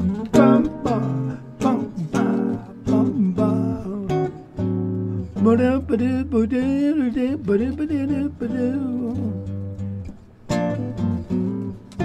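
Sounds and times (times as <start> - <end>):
guitar jazz chords: 0.0 - 12.0.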